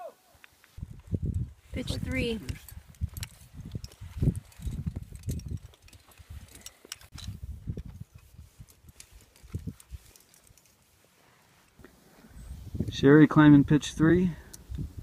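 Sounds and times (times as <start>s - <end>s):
climbing rope and carabiners handled: 0.4s - 12.5s.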